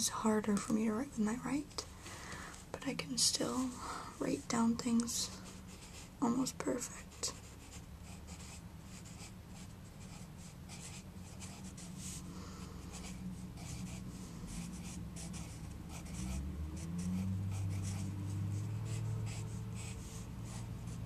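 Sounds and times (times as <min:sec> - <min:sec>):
pencil scratching on paper: 0:05.5 - 0:12.3, 0:12.9 - 0:21.0.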